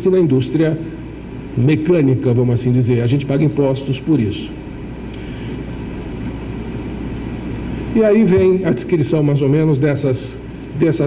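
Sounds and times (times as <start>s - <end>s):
low rumble with hum: 0.0s - 11.0s.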